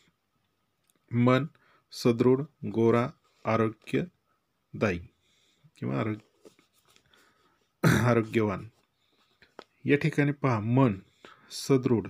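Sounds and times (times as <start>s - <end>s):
man speaking: 1.1s - 5.2s, 5.8s - 6.4s, 7.8s - 8.8s, 9.8s - 12.0s.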